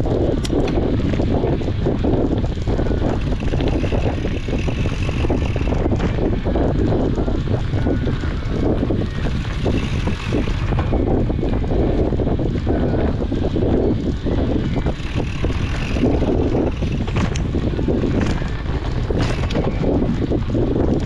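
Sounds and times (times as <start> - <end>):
bike knocks and rattles: 0.0 - 21.0
tyre rumble: 0.0 - 21.0
wind rushing over microphone: 0.0 - 21.0.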